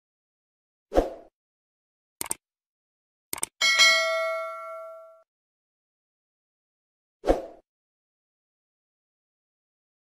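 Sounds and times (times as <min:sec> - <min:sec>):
bell chime ding: 0:03.6 - 0:05.2.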